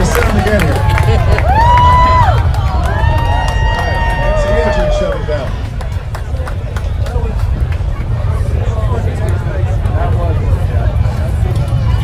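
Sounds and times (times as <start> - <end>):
crowd cheering and whooping: 0.0 - 6.4
crowd chattering: 0.0 - 12.0
steady low rumble: 0.0 - 12.0.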